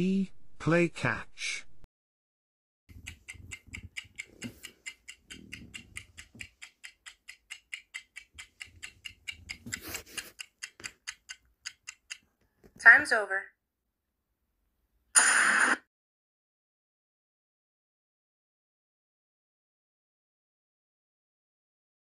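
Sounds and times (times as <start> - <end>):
clock ticking fast: 2.9 - 12.2.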